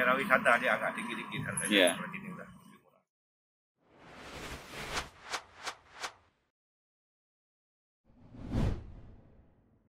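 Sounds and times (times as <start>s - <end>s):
whoosh transition effect: 3.9s - 6.2s.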